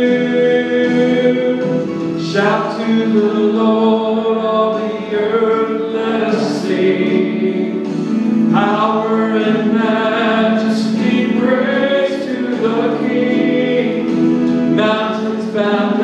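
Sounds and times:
man singing into microphone: 0.0 - 16.0
musical accompaniment: 0.0 - 16.0.

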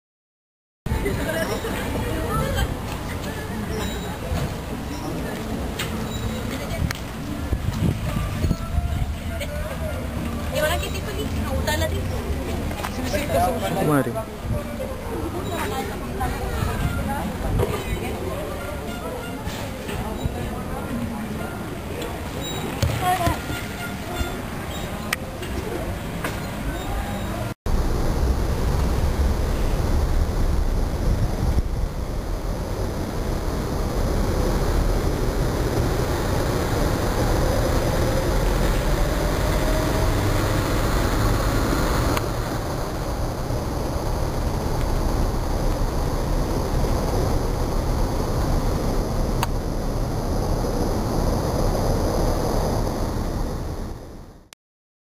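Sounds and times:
road and vehicle rumble: 0.9 - 54.6.

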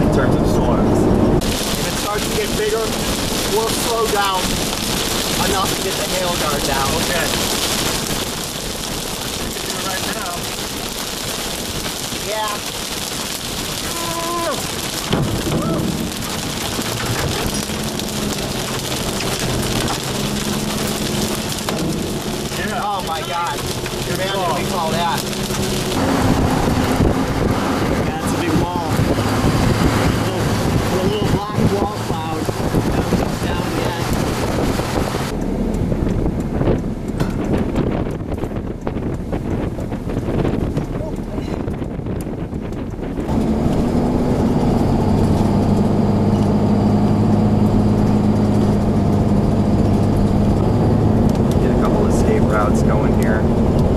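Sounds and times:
heavy rain on vehicle: 0.0 - 53.9.

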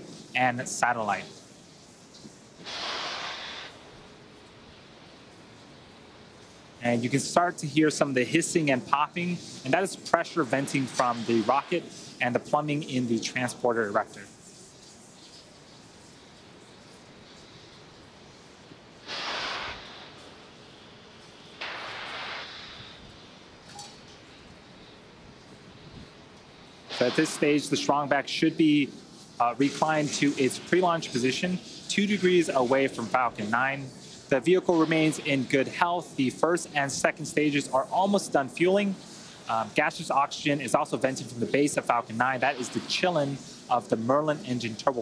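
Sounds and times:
faint steady background noise: 0.0 - 45.0
pressure venting hiss: 0.0 - 45.0.

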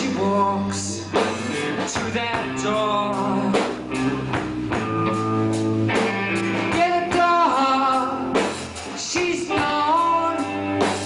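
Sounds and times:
sung lead vocal: 0.0 - 4.9, 6.0 - 11.0
drum kit: 0.0 - 11.0
electric guitars: 0.0 - 11.0.

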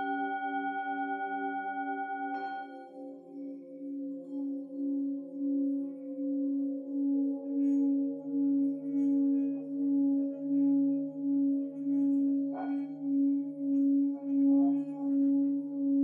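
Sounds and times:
singing bowl low tone: 0.0 - 16.0.

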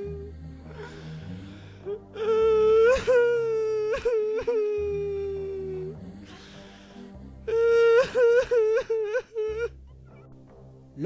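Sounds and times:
woman wailing and sobbing: 1.9 - 6.5, 7.4 - 10.3.

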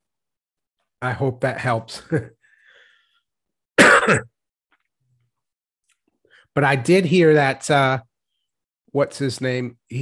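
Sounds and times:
man coughing: 3.8 - 4.4.

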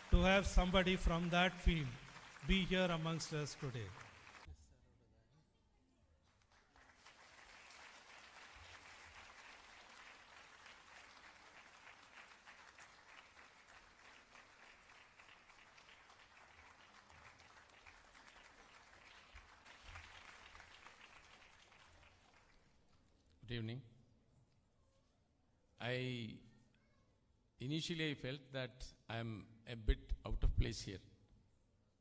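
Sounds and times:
audience applause: 0.0 - 4.5, 6.5 - 22.6.

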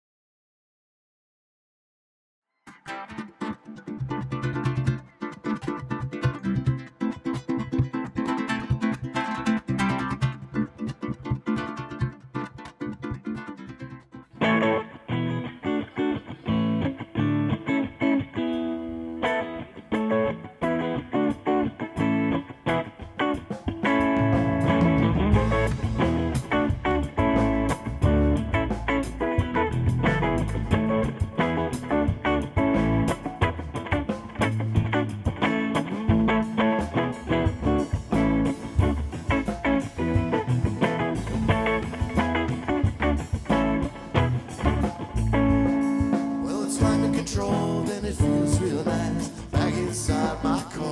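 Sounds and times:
electric guitar picking: 2.7 - 50.9
live band music: 2.9 - 13.0, 14.4 - 50.9.

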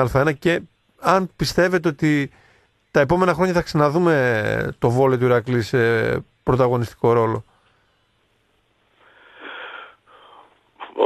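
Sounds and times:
man speaking: 0.0 - 2.3, 2.9 - 7.5
man breathing heavily over phone: 9.0 - 10.7.

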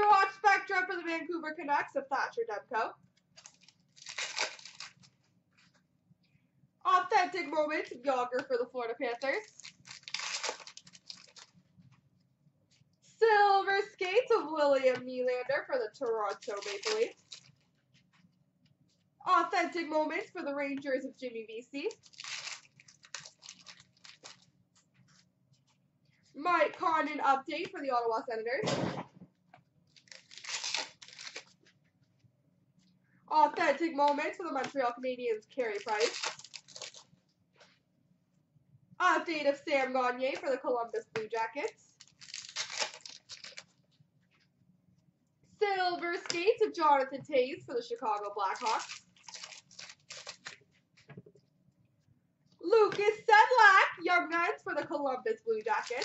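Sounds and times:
wrapper ripping: 3.4 - 5.1, 9.1 - 11.6, 16.3 - 17.6, 21.9 - 24.5, 29.9 - 31.6, 35.6 - 37.1, 41.9 - 43.8, 48.4 - 50.6, 55.6 - 56.0
trading cards rustling: 3.4 - 5.2, 8.4 - 11.5, 16.0 - 17.6, 21.8 - 25.2, 29.9 - 31.7, 35.5 - 37.1, 41.2 - 43.8, 48.2 - 50.6, 55.6 - 56.0.

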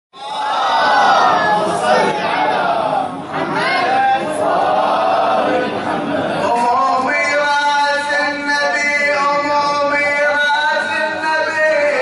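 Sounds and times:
men chanting together: 0.8 - 7.1.

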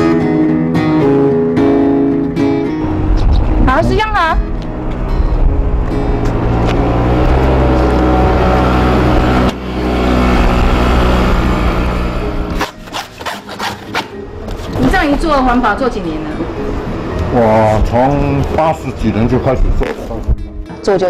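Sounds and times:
motor scooter engine running: 4.8 - 12.6.

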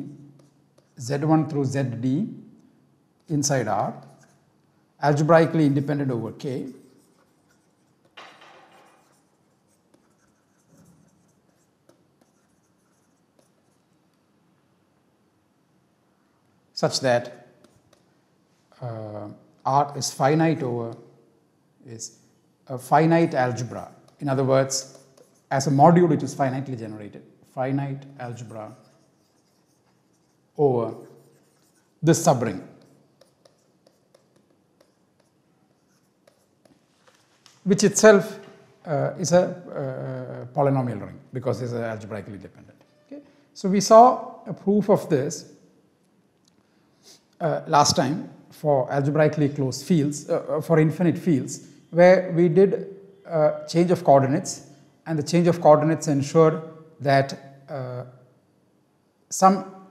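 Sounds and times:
stylus scratching on tablet: 0.4 - 1.3, 3.5 - 4.5, 5.2 - 14.2, 17.2 - 18.1, 23.0 - 26.9, 28.2 - 37.9
stylus tapping on a tablet: 8.0 - 9.2.

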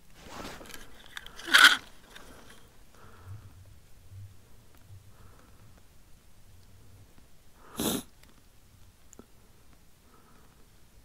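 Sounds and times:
handling rustle: 0.0 - 2.7
loud scrape: 0.2 - 2.6.

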